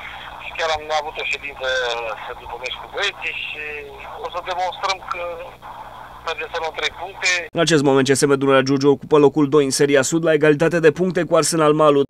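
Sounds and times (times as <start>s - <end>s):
man speaking over telephone: 0.0s - 12.0s.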